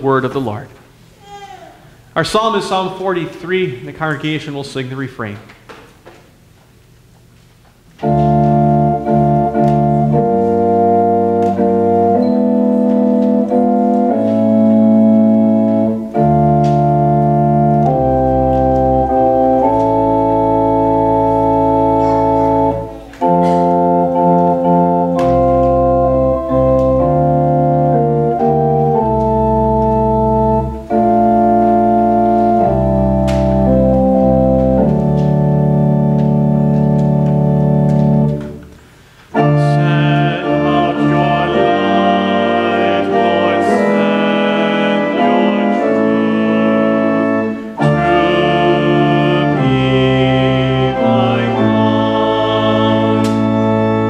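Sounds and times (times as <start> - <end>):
church organ playing chords: 8.0 - 54.0.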